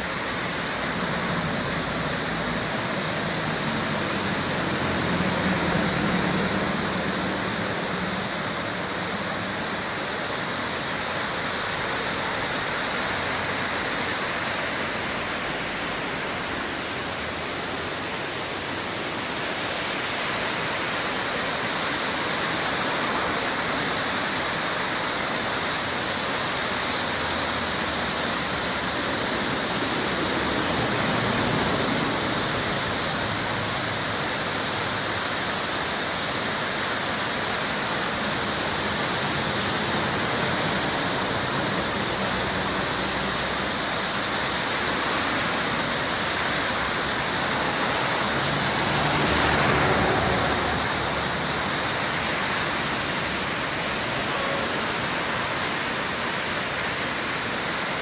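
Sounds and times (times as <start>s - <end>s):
water rushing through rapids: 0.0s - 58.0s.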